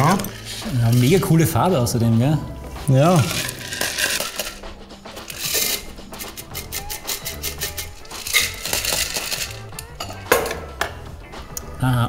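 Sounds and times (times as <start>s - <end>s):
background music with bass line: 0.0s - 12.0s
ice clinking in cocktail shaker: 3.2s - 4.6s, 7.0s - 10.6s.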